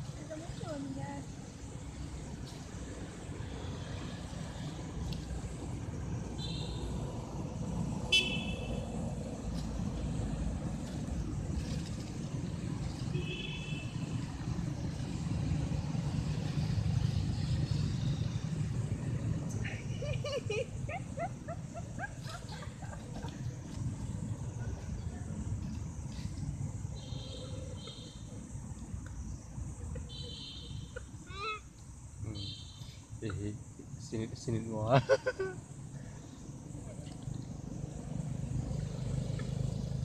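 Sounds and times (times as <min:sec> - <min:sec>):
traffic rumble: 0:00.0 - 0:40.0
vehicle horn toots: 0:08.1 - 0:08.8, 0:13.1 - 0:14.0, 0:30.1 - 0:31.0, 0:32.3 - 0:32.8.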